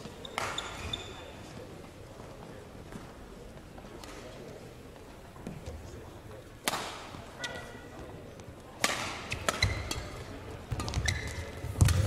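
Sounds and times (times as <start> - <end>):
shoe squeaking on court floor: 0.0 - 1.6, 7.4 - 8.0, 9.3 - 12.0
racket striking shuttlecock: 6.6 - 7.6, 8.8 - 11.0.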